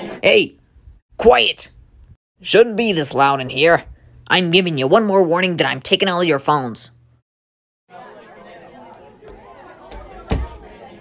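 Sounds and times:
classroom chatter: 7.9 - 11.0.

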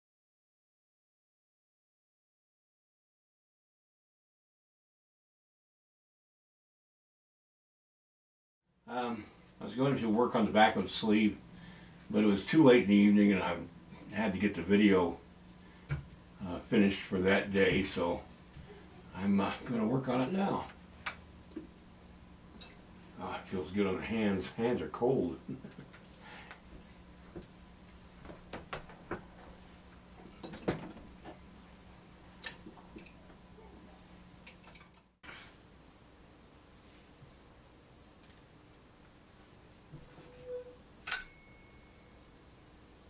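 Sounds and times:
low steady hum: 8.8 - 43.0
faint high ringing tone: 40.1 - 42.6.

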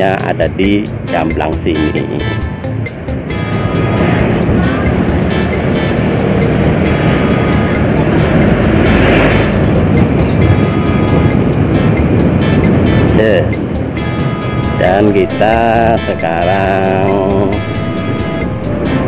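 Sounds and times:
background music: 0.0 - 19.0
motorcycle engine and road noise: 0.0 - 19.0
wind on microphone: 3.3 - 19.0.

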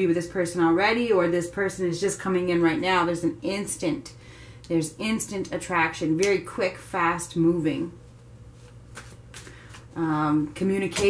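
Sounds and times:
cards being shuffled: 8.5 - 10.0.

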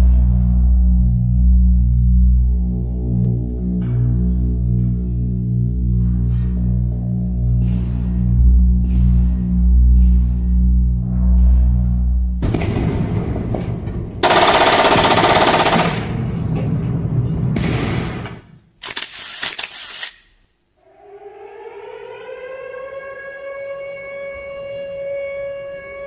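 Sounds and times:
siren-like rising tone: 20.8 - 26.0.

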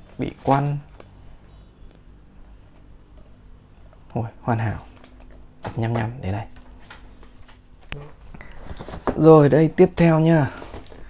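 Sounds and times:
steady low hum: 0.0 - 11.0
handling of paperback book: 6.5 - 9.2, 10.4 - 11.0.

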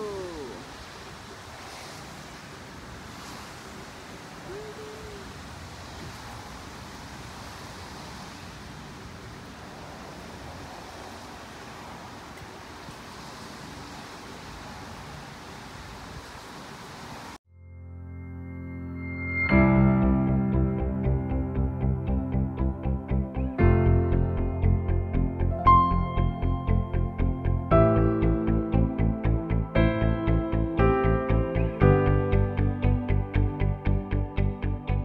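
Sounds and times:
steady outdoor rushing noise: 0.0 - 17.4
soft ambient music: 17.5 - 35.0.

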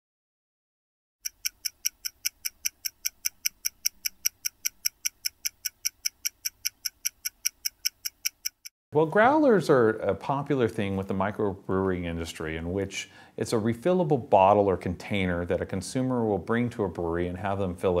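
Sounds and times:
stopwatch ticking: 1.2 - 8.7.

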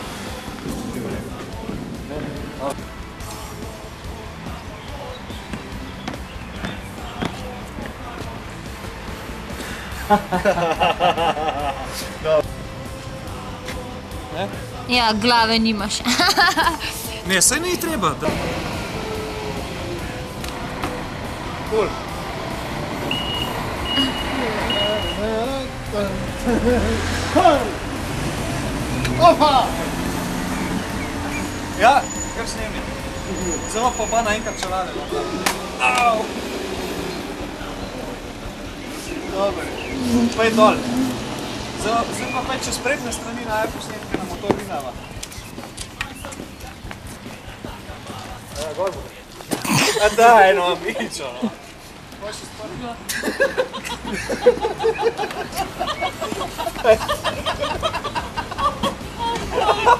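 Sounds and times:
street traffic: 0.0 - 59.9.

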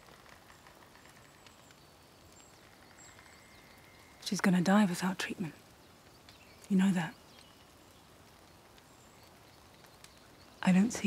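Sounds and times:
faint forest ambience: 0.0 - 11.0.

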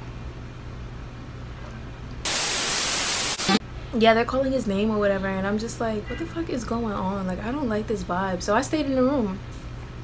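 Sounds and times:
low steady hum: 0.0 - 10.0
loud white-noise static: 2.2 - 4.4.

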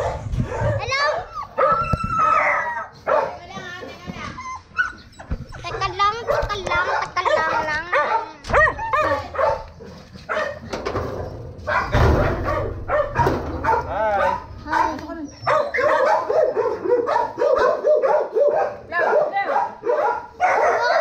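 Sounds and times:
dog barking: 0.0 - 3.4, 5.6 - 10.7, 11.6 - 21.0
dog whining: 1.2 - 3.0, 4.2 - 6.5, 11.7 - 17.8.

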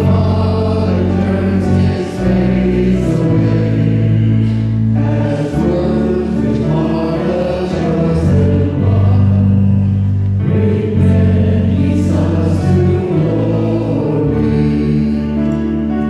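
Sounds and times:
electric keyboard: 0.0 - 16.0
voices singing a hymn: 0.0 - 16.0.

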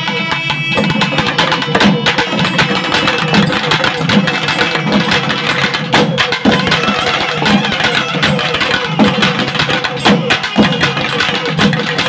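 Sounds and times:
barrel drums beating fast rhythm: 0.0 - 12.0.

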